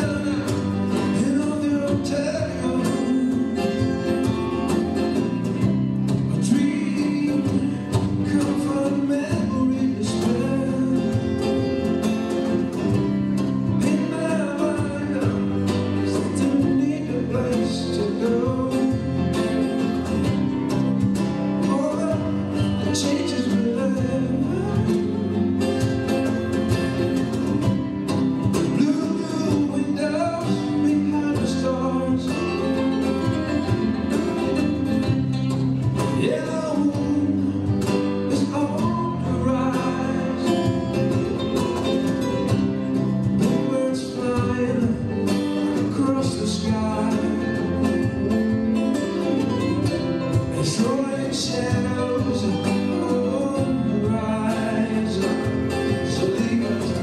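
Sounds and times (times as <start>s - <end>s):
acoustic band playing: 0.0s - 57.0s
cajon: 0.0s - 57.0s.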